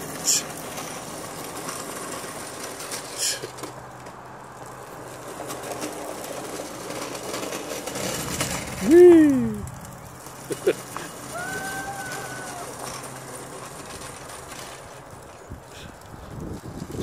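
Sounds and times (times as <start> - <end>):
hand truck wheels rolling on concrete: 0.0 - 17.0.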